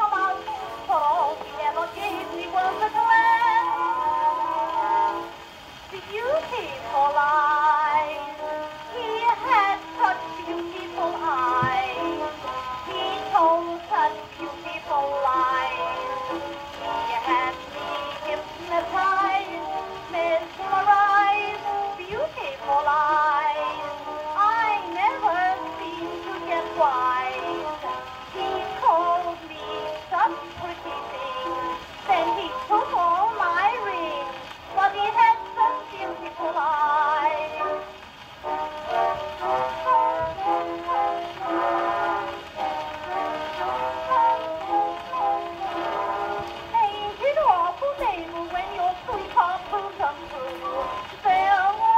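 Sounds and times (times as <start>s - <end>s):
woman singing on old record: 0.0s - 51.9s.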